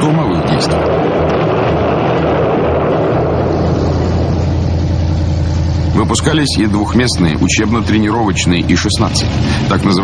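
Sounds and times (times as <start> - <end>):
piston aircraft engine droning: 0.0 - 10.0.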